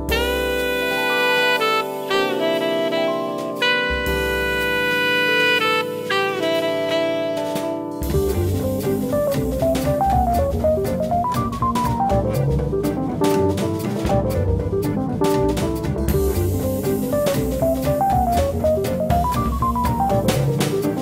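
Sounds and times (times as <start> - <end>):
electronic drums played with brushes: 0.0 - 21.0
jazz backing track: 0.0 - 21.0.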